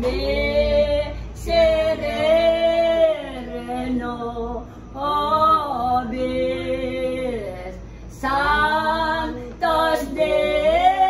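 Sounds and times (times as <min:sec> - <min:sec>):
women singing a hymn unaccompanied: 0:00.0 - 0:11.0.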